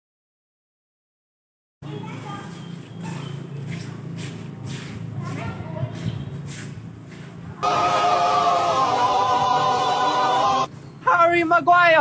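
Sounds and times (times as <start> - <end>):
faint outdoor background: 1.8 - 12.0
choir holding a sustained chord: 7.6 - 10.7.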